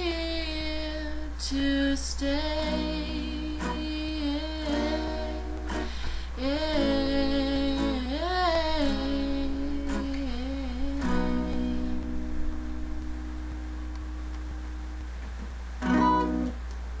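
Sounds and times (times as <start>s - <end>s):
woman humming a melody: 0.0s - 5.7s, 6.4s - 12.2s
strummed acoustic guitar: 2.2s - 16.6s.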